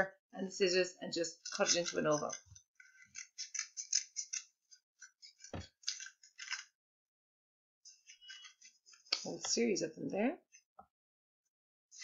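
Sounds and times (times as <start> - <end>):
scissors cutting paper: 1.5 - 6.7.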